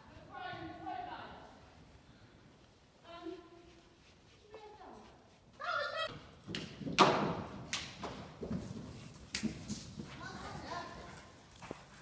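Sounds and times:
horse hooves thudding on sand: 0:03.3 - 0:12.0.

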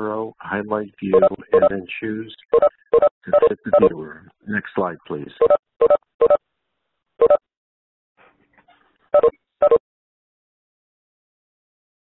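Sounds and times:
telephone keypad beeps: 0:09.2 - 0:09.8.

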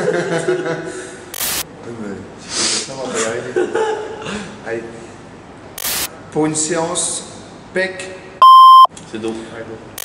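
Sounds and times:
men laughing and talking: 0:00.0 - 0:01.2, 0:03.0 - 0:04.6
short sharp hiss: 0:05.8 - 0:06.1.

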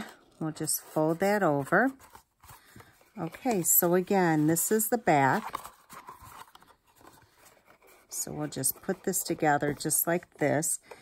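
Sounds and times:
cardboard box rustling: 0:00.6 - 0:10.0.

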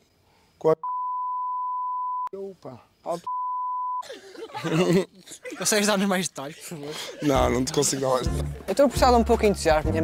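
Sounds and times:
high-pitched censor beep: 0:00.8 - 0:02.3, 0:03.3 - 0:04.0.

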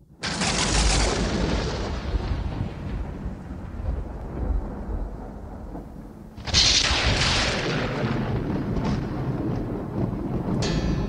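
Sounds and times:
deep boom with rumbling decay: 0:00.3 - 0:11.0.

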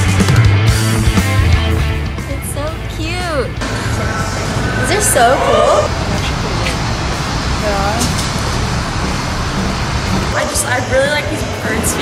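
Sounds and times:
road traffic noise: 0:01.7 - 0:12.0.

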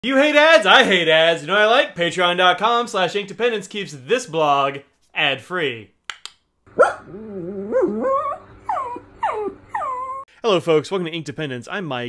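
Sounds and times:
dog whining: 0:06.8 - 0:10.3.

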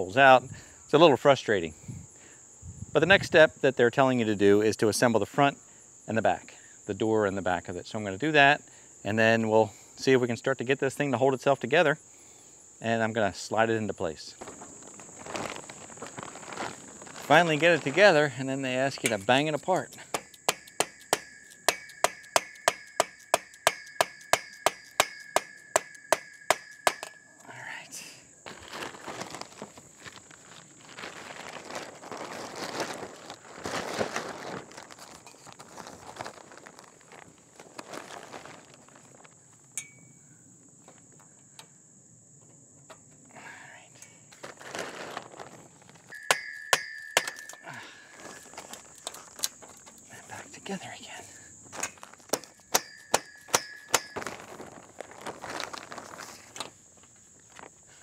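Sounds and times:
canvas cover rustling: 0:14.4 - 0:19.1, 0:28.4 - 0:39.5, 0:44.4 - 0:46.2, 0:54.0 - 0:57.7
metal poles knocking: 0:19.0 - 0:27.3, 0:46.1 - 0:47.6, 0:51.8 - 0:54.4.

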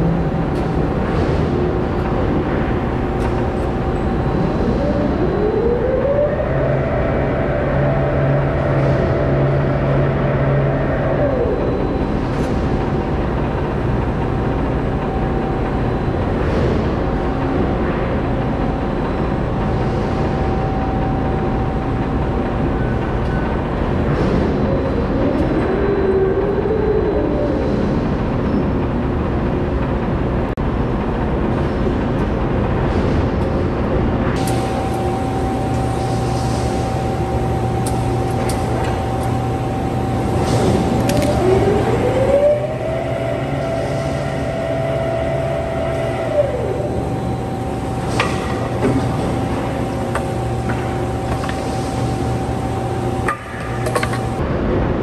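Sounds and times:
crane drive whining: 0:00.0 - 0:54.5
steady machinery hum: 0:00.0 - 0:55.0.

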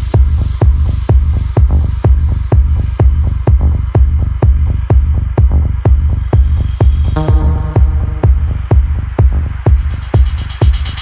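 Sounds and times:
kick drum beat: 0:00.0 - 0:11.0
low throbbing bass: 0:00.0 - 0:11.0.

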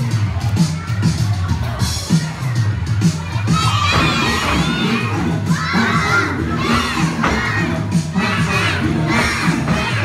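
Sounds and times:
children shouting and cheering: 0:00.0 - 0:10.0
music: 0:00.0 - 0:10.0.

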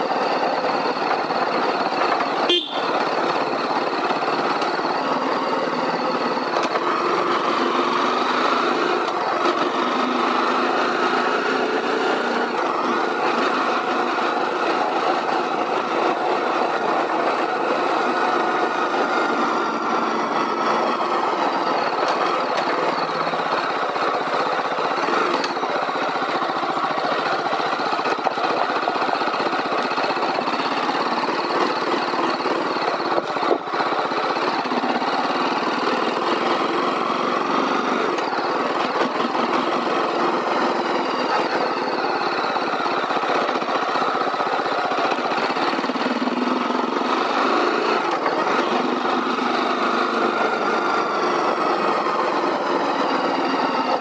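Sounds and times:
motorcycle engine and exhaust: 0:00.0 - 0:54.0.

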